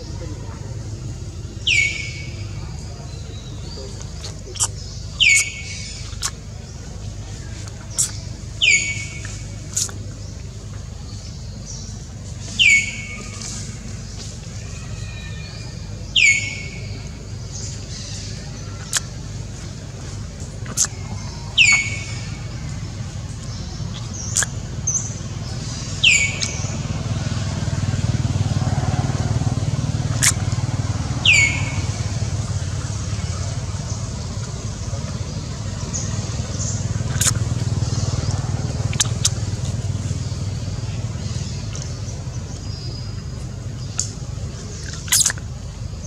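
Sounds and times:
downward-sweeping bird calls: 0:00.0 - 0:45.5
distant road traffic rumble: 0:00.0 - 0:46.0.

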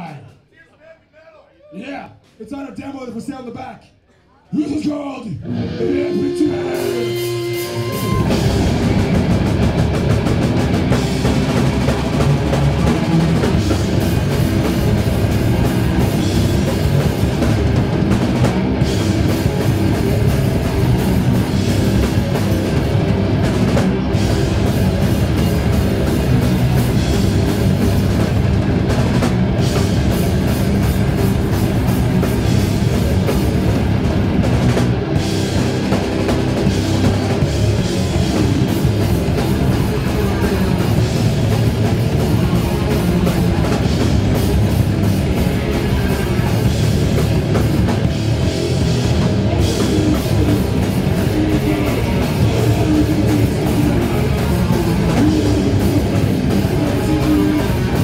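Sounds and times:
death metal band playing: 0:04.6 - 0:58.0.

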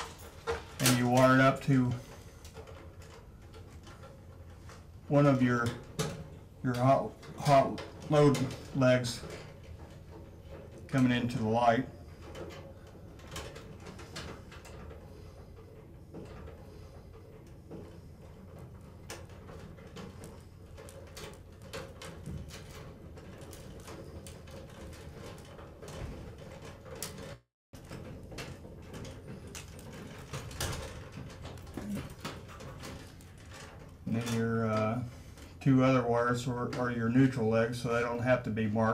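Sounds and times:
wires clicking and rustling: 0:00.0 - 0:38.9.

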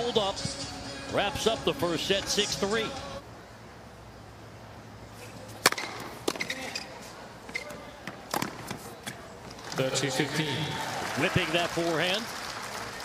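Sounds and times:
tennis ball struck by rackets: 0:05.5 - 0:06.6, 0:08.0 - 0:09.2.

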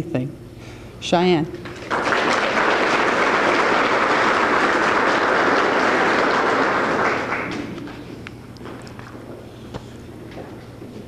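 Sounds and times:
audience applauding: 0:01.6 - 0:08.1.

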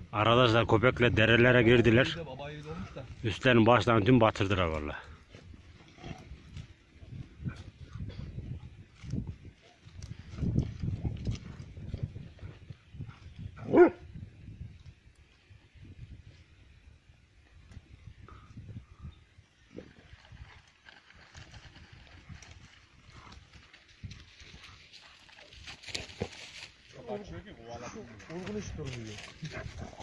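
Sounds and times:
dogs growling and scuffling: 0:05.3 - 0:08.3, 0:08.9 - 0:13.8, 0:19.8 - 0:26.8, 0:27.8 - 0:30.0
dog barking: 0:13.6 - 0:14.0.

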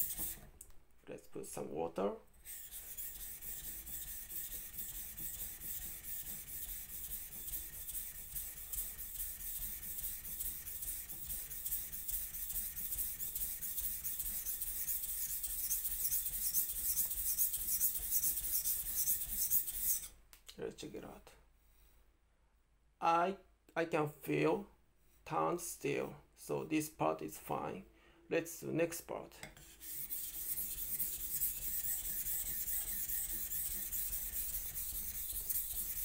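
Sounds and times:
knife scraping on whetstone: 0:00.0 - 0:00.4, 0:02.4 - 0:20.2, 0:29.4 - 0:36.0.

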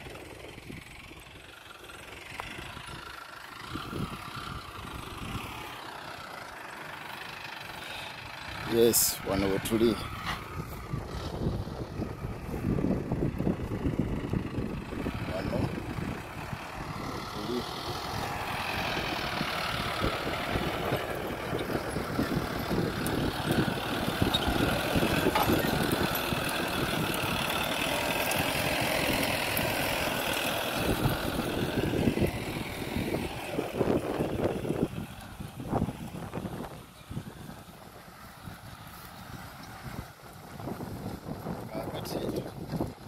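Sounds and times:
tractor engine running: 0:00.0 - 0:43.0.

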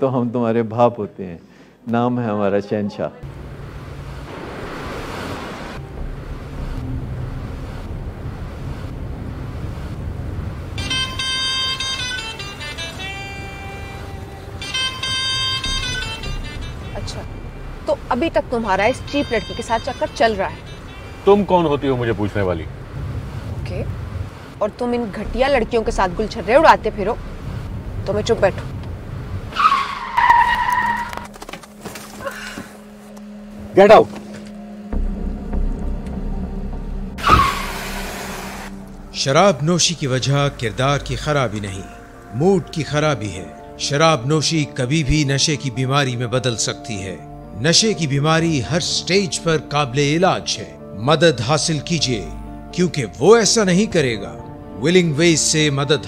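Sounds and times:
car cabin road rumble: 0:03.2 - 0:39.3
rushing noise: 0:03.3 - 0:12.8, 0:36.2 - 0:39.2
car tyres squealing: 0:10.7 - 0:18.0, 0:29.4 - 0:32.6, 0:37.2 - 0:38.9.

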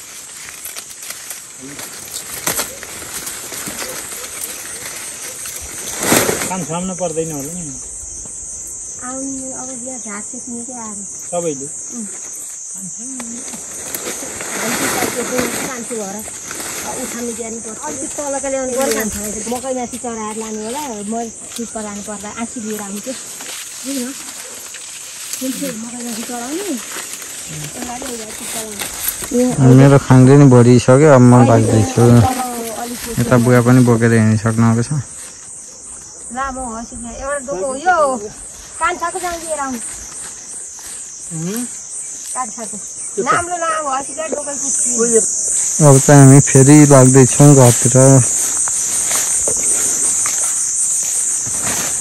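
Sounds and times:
insects hissing: 0:00.0 - 0:52.0
person speaking: 0:27.5 - 0:34.8, 0:43.2 - 0:48.6.

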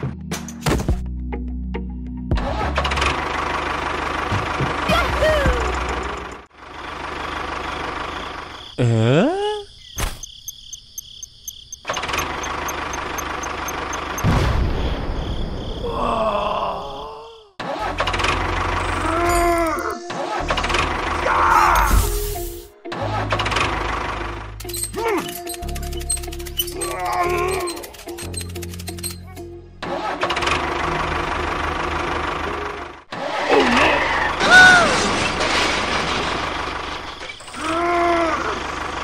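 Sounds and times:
background music: 0:00.0 - 0:03.1, 0:17.8 - 0:33.8
engine running: 0:02.4 - 0:08.6, 0:11.8 - 0:14.3, 0:17.8 - 0:19.3, 0:22.9 - 0:34.4, 0:38.2 - 0:39.0.

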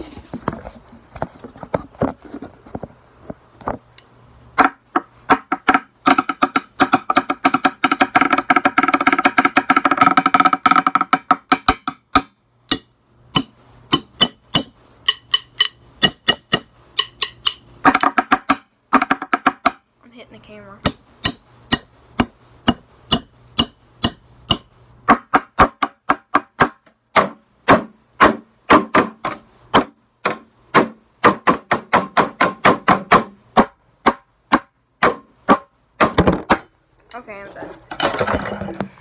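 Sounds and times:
drumsticks striking a bucket: 0:04.6 - 0:19.8, 0:20.8 - 0:36.7.

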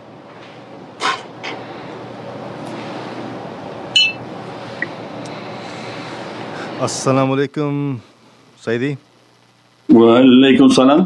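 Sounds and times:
background hiss: 0:00.0 - 0:11.0
high-pitched ping: 0:04.0 - 0:04.2
man speaking: 0:06.8 - 0:09.0.

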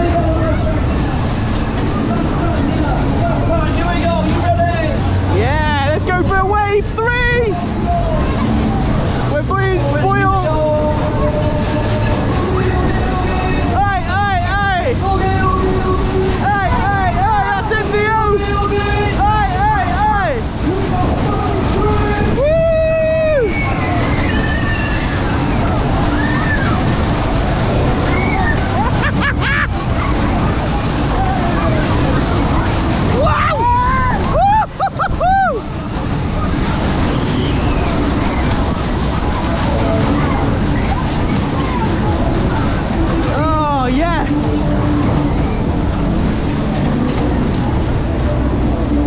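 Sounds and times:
fairground ride rumble: 0:00.0 - 0:49.0
riders whooping and screaming: 0:21.2 - 0:41.9.

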